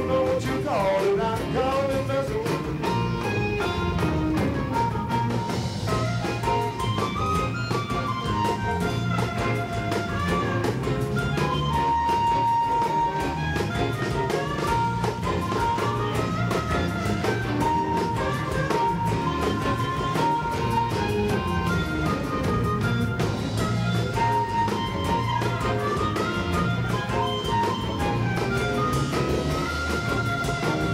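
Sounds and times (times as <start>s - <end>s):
amplified harmonica lead: 0.0s - 30.9s
drum kit beat: 0.0s - 30.9s
guitar: 0.0s - 30.9s.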